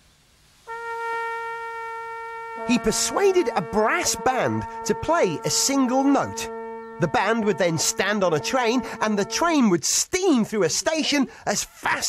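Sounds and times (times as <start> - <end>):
brass band holding a steady note: 0.7 - 11.0.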